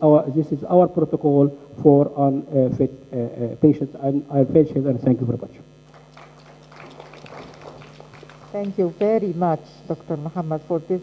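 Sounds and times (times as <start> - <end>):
electrical hum: 0.0 - 11.0
audience clapping: 5.8 - 9.3.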